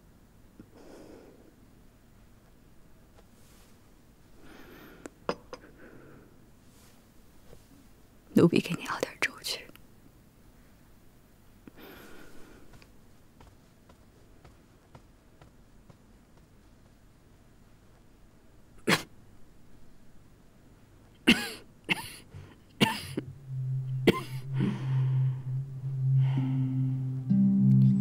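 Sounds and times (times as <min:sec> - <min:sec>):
woman speaking: 0:08.3 - 0:09.7
woman coughing: 0:21.2 - 0:22.2, 0:22.8 - 0:23.2, 0:24.1 - 0:24.4.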